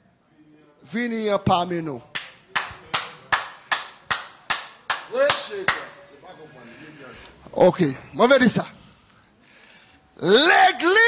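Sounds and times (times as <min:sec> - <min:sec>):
hand clapping: 0:02.1 - 0:06.0.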